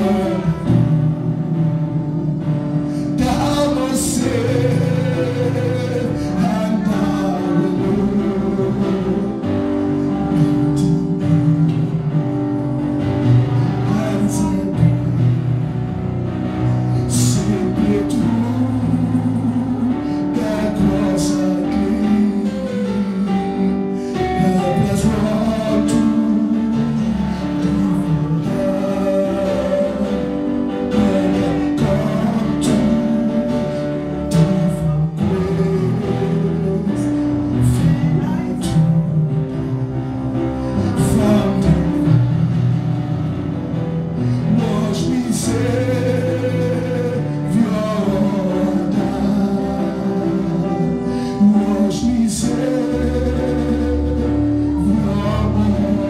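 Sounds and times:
instrumental backing music: 0:00.0 - 0:56.0
man singing into a microphone: 0:00.0 - 0:56.0.

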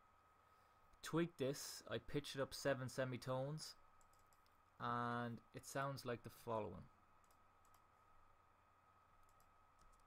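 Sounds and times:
faint steady hum: 0:00.0 - 0:10.0
computer mouse clicks: 0:04.0 - 0:04.6, 0:07.2 - 0:07.9, 0:09.2 - 0:10.0.

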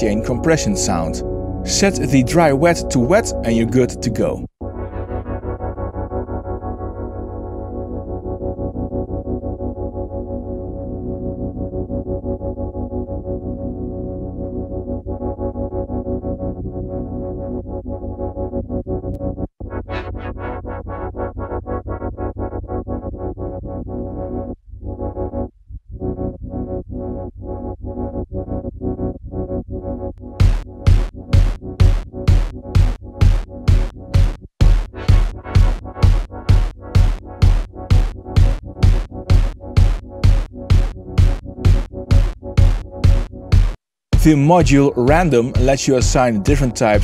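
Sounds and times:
pumping synthesizer chord: 0:00.0 - 0:04.2, 0:30.3 - 0:47.0.

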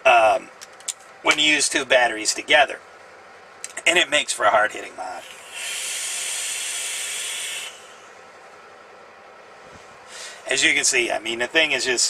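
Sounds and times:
vape coil hissing: 0:05.2 - 0:08.0.

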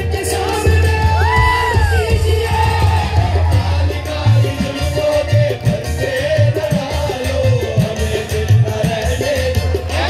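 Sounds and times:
qawwali music through speakers: 0:00.0 - 0:10.0
crowd cheering: 0:00.4 - 0:04.4.

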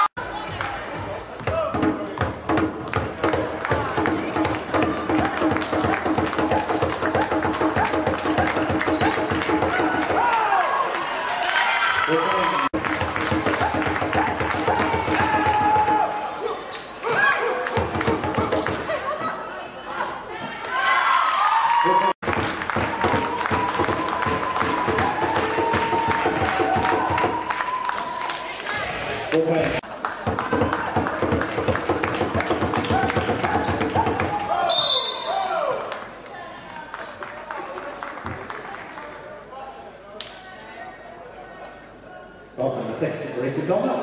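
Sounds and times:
basketball bouncing on wooden court: 0:01.4 - 0:10.2, 0:12.8 - 0:16.0, 0:17.8 - 0:19.0, 0:22.2 - 0:27.4, 0:30.2 - 0:34.6
shoes squeaking: 0:03.3 - 0:07.3, 0:32.8 - 0:35.7
shrill referee's whistle: 0:34.4 - 0:35.6.

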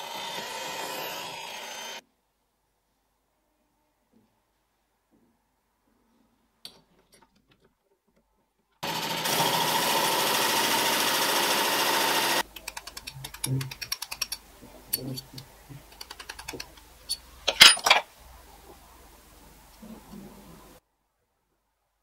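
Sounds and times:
electric drill boring wood: 0:00.0 - 0:02.0, 0:08.8 - 0:12.4.

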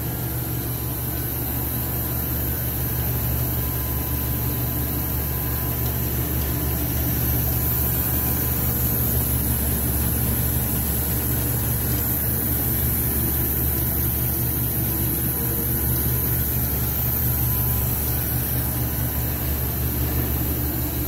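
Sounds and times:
low machine hum: 0:00.0 - 0:21.0.

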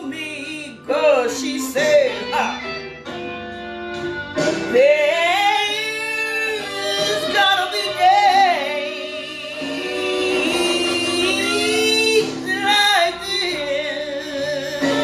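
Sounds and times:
woman singing blues: 0:00.0 - 0:02.9, 0:04.5 - 0:15.0
instrumental backing: 0:00.0 - 0:15.0.

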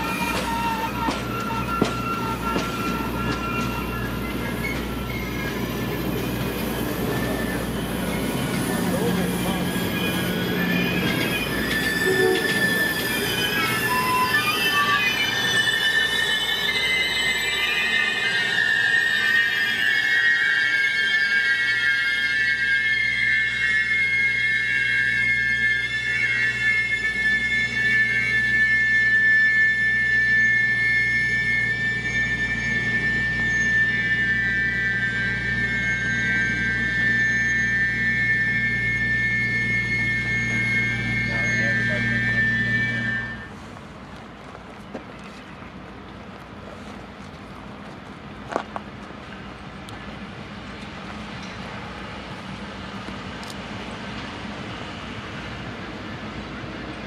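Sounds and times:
diesel locomotive rumble: 0:00.0 - 0:19.2, 0:23.0 - 0:57.0
train wheel squeal: 0:00.0 - 0:57.0.

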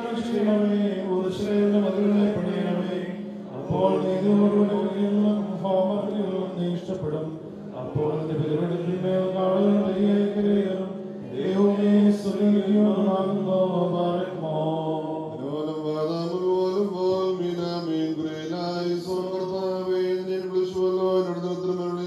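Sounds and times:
voices chanting a hymn: 0:00.0 - 0:22.0.

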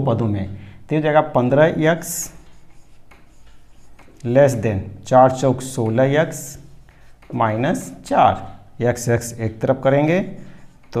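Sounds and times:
marker scratching on whiteboard: 0:01.5 - 0:04.6, 0:05.3 - 0:08.5, 0:09.7 - 0:11.0.

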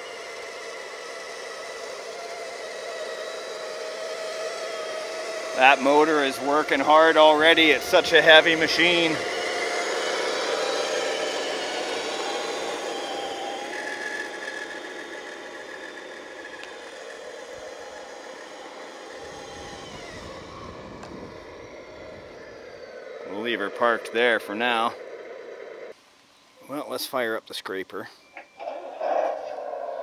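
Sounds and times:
toy truck motor whine: 0:00.0 - 0:26.0.

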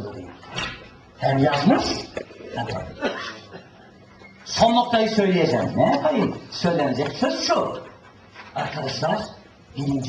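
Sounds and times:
man speaking: 0:01.2 - 0:03.3, 0:04.4 - 0:10.0.

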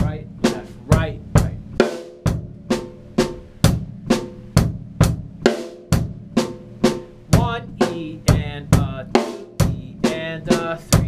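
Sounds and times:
bass drum hits: 0:00.0 - 0:10.2.

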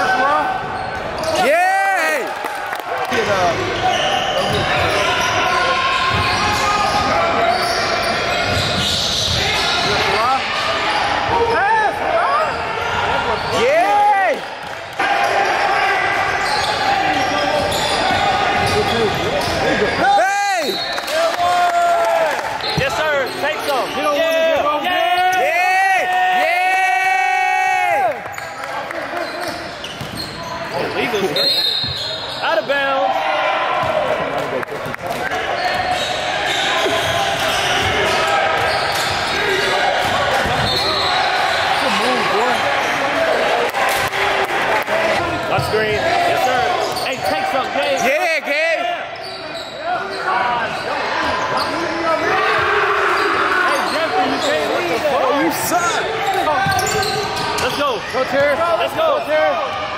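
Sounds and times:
voices echoing in gym: 0:00.0 - 0:59.9.

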